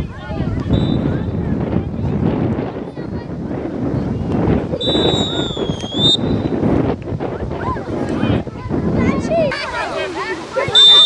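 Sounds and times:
wind on microphone: 0.0 - 11.0
referee whistle blast: 4.8 - 6.4, 10.7 - 11.0
young players shouting: 7.5 - 11.0.

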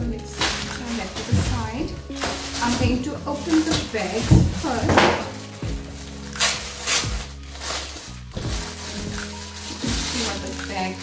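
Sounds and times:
plastic bag crinkling: 0.0 - 11.0
soft background music: 0.0 - 11.0.

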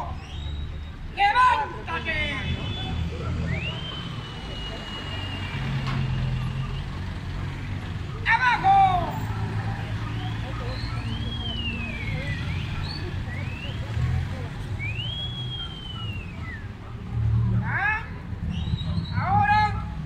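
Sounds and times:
street traffic rumble: 0.0 - 20.0
person shouting: 1.2 - 2.4, 8.2 - 9.2.

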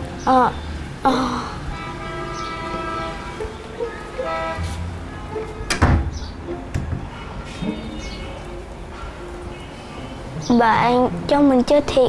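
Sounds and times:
background music: 0.0 - 12.0
door pushed shut thud: 5.7 - 7.1.

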